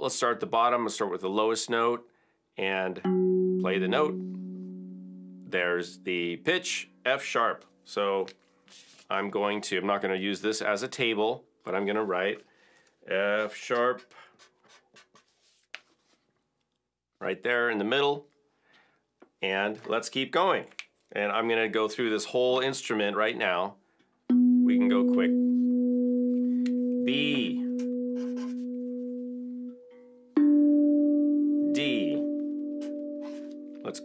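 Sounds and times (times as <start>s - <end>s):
steel tongue drum notes ringing: 3.0s - 6.9s, 24.3s - 34.0s
paper rustling: 13.8s - 16.4s.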